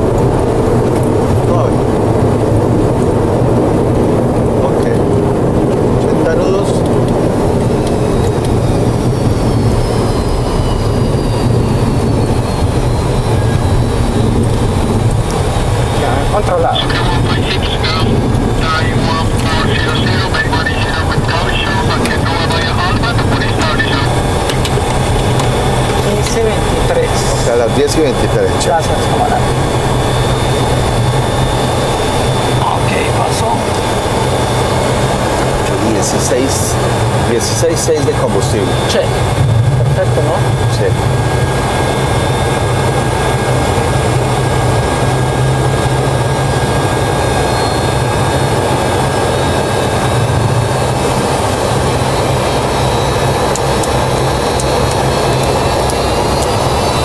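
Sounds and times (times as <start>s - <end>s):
high engine whine: 0.0s - 57.0s
jet engines humming: 0.0s - 57.0s.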